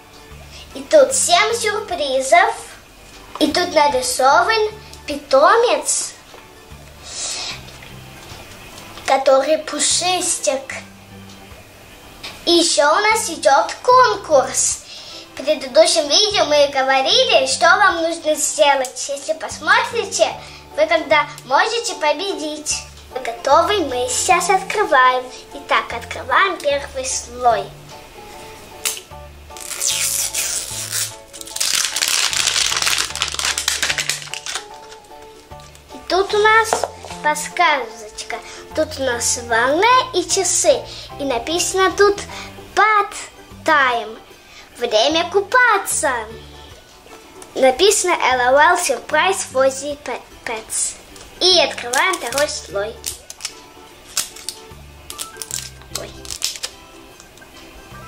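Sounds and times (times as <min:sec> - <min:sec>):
background music: 0:00.0 - 0:58.0
wrapper crinkling and tearing: 0:28.8 - 0:35.9, 0:51.7 - 0:57.4.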